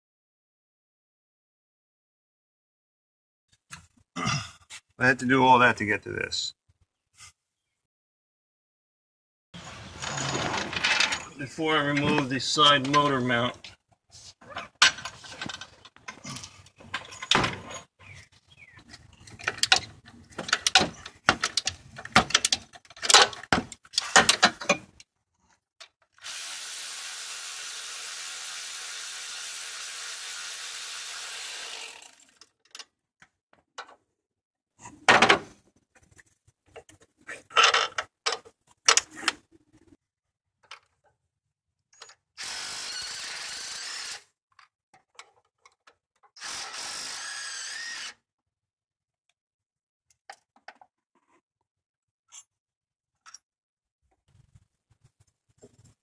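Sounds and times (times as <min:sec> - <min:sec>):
cordless power tool spinning: 0:26.2 - 0:32.3, 0:42.4 - 0:44.2, 0:46.4 - 0:48.2.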